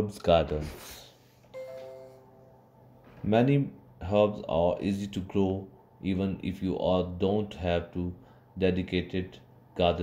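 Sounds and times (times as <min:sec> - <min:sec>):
soft chime: 0:01.6 - 0:02.7.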